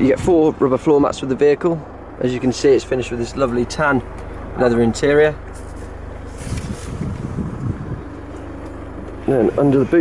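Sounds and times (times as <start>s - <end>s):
steady low hum: 0.0s - 10.0s
camera handling rumble: 5.4s - 9.2s
wind buffeting microphone: 6.0s - 9.2s.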